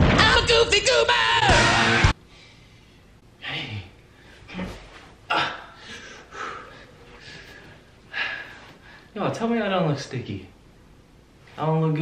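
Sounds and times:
rock music: 0.0 - 2.1.

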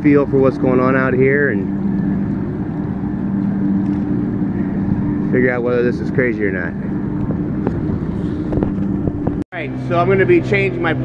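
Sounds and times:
boat motor humming: 0.0 - 11.0
wind noise: 2.0 - 9.4.

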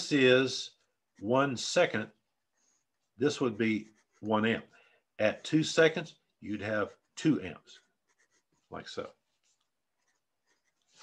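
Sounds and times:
pencil scratching on paper: 0.0 - 11.0.

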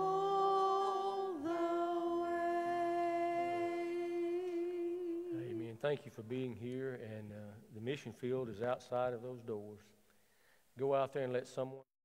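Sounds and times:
women singing a held note: 0.0 - 5.7
man speaking: 5.4 - 10.0, 10.8 - 11.9.

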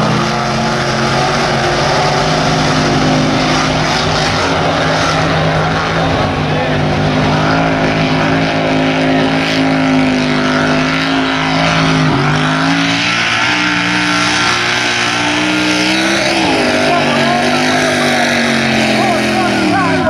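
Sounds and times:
truck engine at high revs: 0.0 - 20.0.

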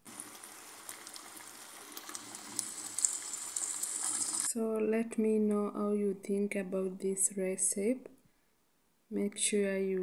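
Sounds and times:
stew sizzling in a frying pan: 0.0 - 4.5.

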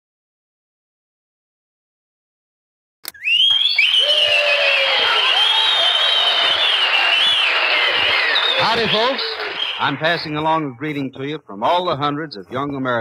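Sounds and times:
whistling tuning tone: 3.1 - 9.9.

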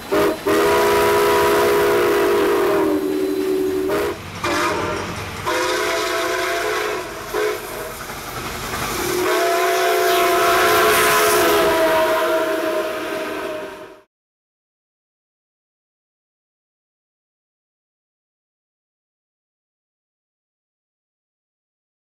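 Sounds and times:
steam locomotive whistle blasts: 0.0 - 8.0, 9.0 - 14.1.

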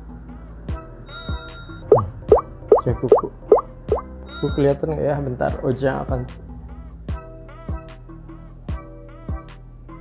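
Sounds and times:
playful background music: 0.0 - 10.0.

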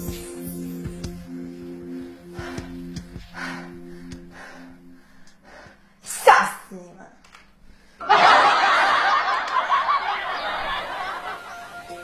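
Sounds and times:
music: 0.0 - 5.9, 10.8 - 12.0
laughter: 8.0 - 11.8.

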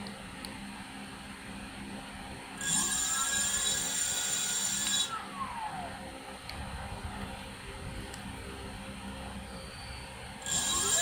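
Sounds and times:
high electric motor whine: 1.2 - 11.0.

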